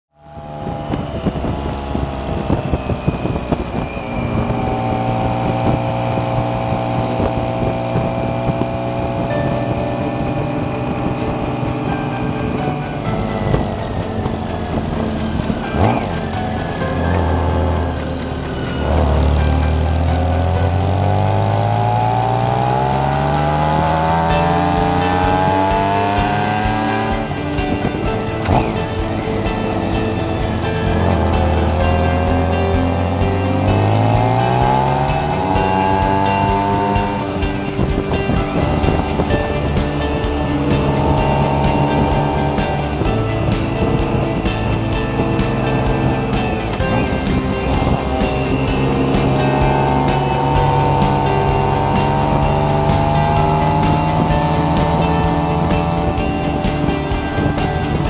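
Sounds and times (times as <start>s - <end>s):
road noise: 0.0s - 58.0s
motorcycle engine running: 0.1s - 58.0s.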